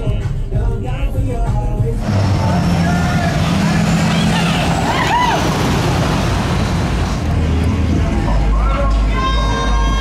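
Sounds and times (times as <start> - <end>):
street traffic: 0.0 - 10.0
pickup truck engine driving past: 2.0 - 8.5.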